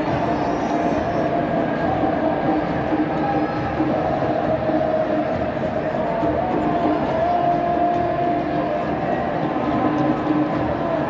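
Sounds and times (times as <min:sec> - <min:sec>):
crowd chanting: 0:00.0 - 0:11.0
stadium crowd din: 0:00.0 - 0:11.0.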